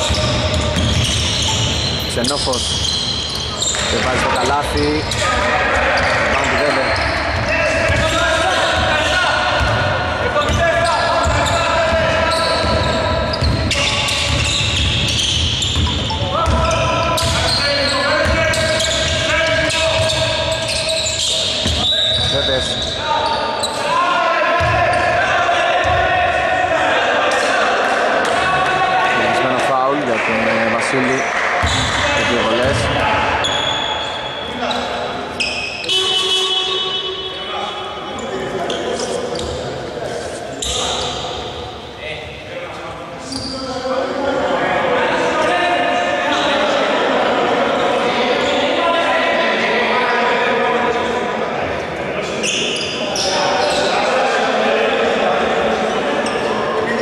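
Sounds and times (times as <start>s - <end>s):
basketball bouncing on court: 0.0s - 2.0s, 6.0s - 17.6s, 18.2s - 20.8s, 24.6s - 25.1s, 31.6s - 32.0s
players calling out: 0.0s - 42.5s, 43.1s - 57.0s.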